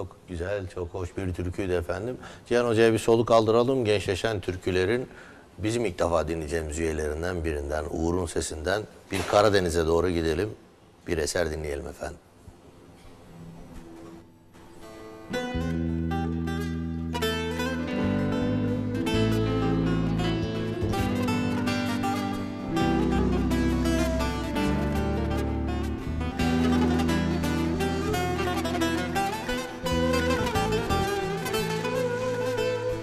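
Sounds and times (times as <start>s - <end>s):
strummed acoustic guitar: 14.7s - 33.0s
saz playing: 14.8s - 33.0s
end-blown flute melody: 17.1s - 33.0s.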